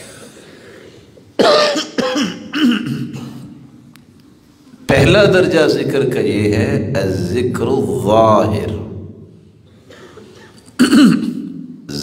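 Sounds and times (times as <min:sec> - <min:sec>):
person clearing throat: 0:01.4 - 0:03.6, 0:09.8 - 0:11.7
person coughing: 0:01.4 - 0:03.6, 0:09.8 - 0:11.6.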